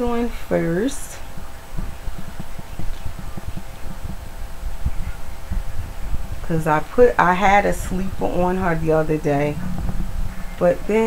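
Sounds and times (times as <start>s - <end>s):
soft low bumps: 0.0s - 11.0s.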